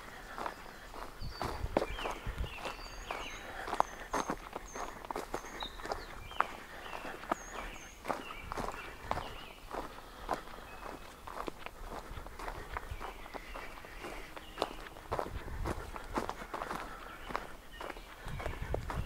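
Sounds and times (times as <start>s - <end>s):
footsteps crunching on wood chips: 0.0s - 19.0s.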